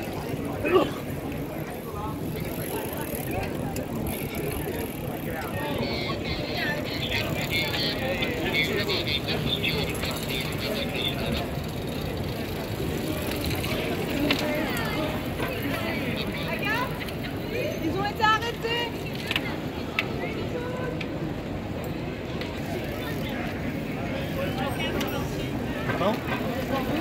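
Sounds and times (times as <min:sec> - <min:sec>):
bicycle freewheel ticking: 0:00.0 - 0:27.0
voices of people: 0:00.0 - 0:27.0.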